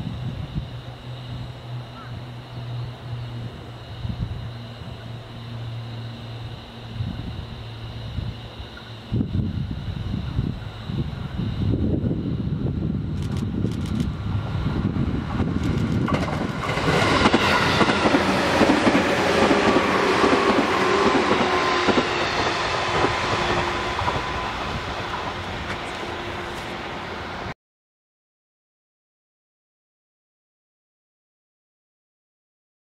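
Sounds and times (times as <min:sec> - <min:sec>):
faint falling whine: 0:00.0 - 0:16.1
train wheels on rails: 0:13.2 - 0:27.5.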